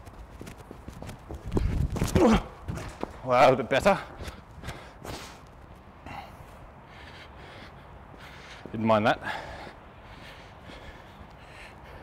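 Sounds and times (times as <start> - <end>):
soft footsteps on artificial turf: 0.0 - 6.8, 8.0 - 12.0
man breathing hard: 4.1 - 12.0.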